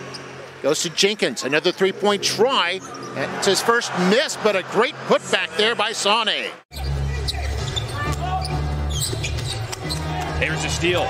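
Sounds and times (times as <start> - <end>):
arena music: 2.2 - 11.0.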